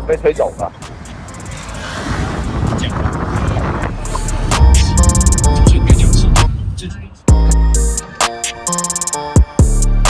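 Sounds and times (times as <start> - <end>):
wind buffeting microphone: 0.6 - 7.2.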